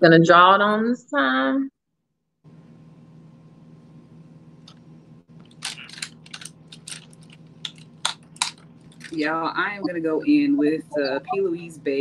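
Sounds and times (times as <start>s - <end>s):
low steady hum: 2.4s - 12.0s
small plastic clicks and rattles: 5.4s - 9.1s.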